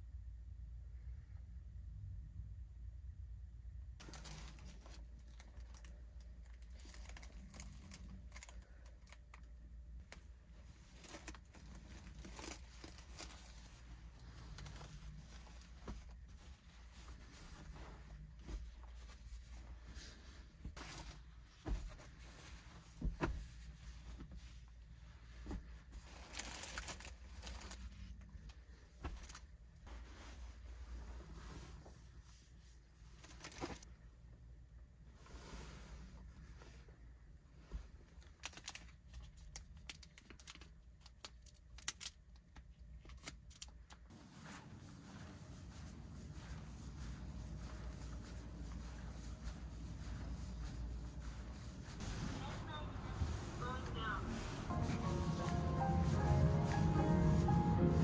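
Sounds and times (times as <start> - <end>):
faint rustling: 4.0 - 34.1, 44.1 - 58.0.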